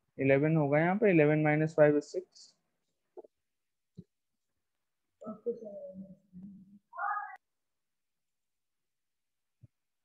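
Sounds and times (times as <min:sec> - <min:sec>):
voice over a video call: 0:00.1 - 0:03.3, 0:05.2 - 0:07.5.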